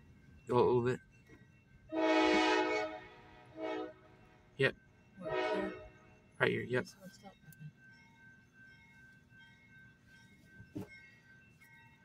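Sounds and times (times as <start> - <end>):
locomotive air horn chord: 1.9 - 4.1, 5.2 - 5.9.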